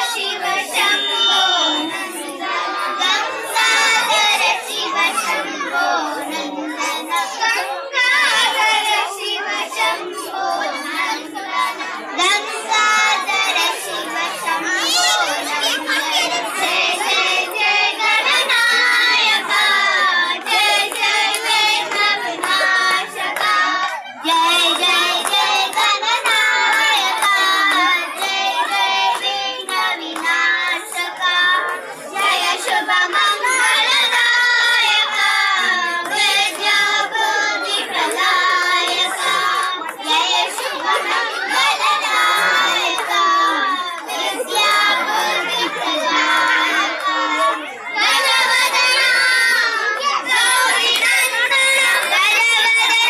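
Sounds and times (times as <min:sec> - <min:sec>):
children chanting in unison: 0:00.0 - 0:53.0.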